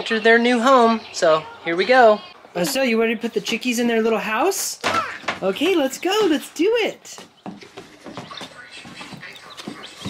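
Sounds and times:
baby chicks peeping: 0.0s - 10.0s.

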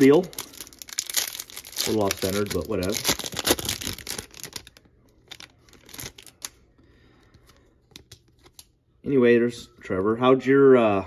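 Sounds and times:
foil wrapper crinkling: 0.0s - 6.6s.

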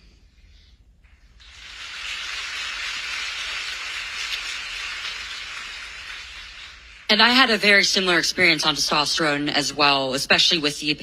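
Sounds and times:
audience applause: 1.4s - 7.1s.

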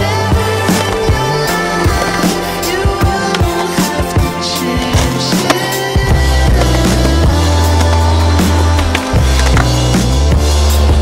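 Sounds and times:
backing music with deep bass: 0.0s - 11.0s
skateboard wheels rolling on concrete: 0.0s - 11.0s
skateboard clacks: 6.6s - 9.9s.

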